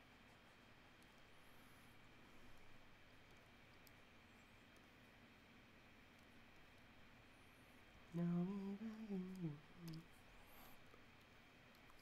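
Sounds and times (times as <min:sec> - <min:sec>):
man humming: 0:08.1 - 0:10.0.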